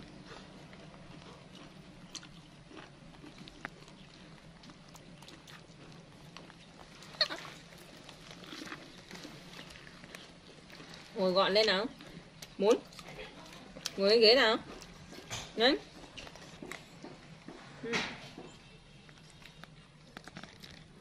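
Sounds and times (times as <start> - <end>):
monkey eating corn: 0.0 - 14.0, 18.3 - 21.0.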